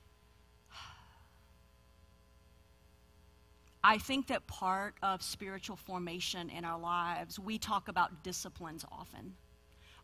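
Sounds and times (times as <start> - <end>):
faint steady hum: 0.0 - 10.0
woman sighing: 0.7 - 1.4.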